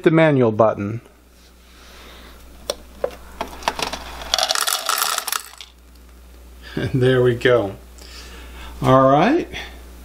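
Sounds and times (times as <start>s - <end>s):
kibble rattling into bowl: 3.7s - 5.8s.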